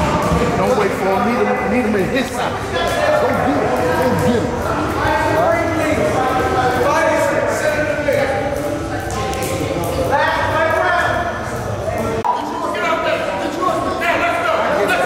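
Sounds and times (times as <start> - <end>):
people talking in echoing hall: 0.0 - 15.0.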